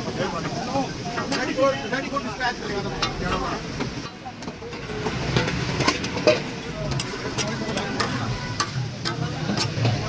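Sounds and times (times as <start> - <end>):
metal spatulas on griddle: 0.0 - 10.0
sizzle and hum: 0.0 - 10.0.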